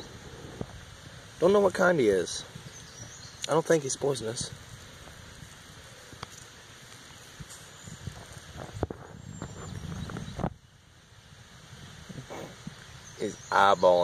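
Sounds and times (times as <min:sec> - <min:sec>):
low rumbling on microphone: 0:00.0 - 0:01.4, 0:07.4 - 0:10.7.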